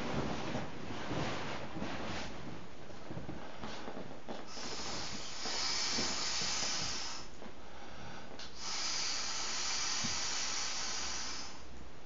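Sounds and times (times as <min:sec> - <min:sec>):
air hissing through valve: 0:04.5 - 0:07.4, 0:08.4 - 0:11.8.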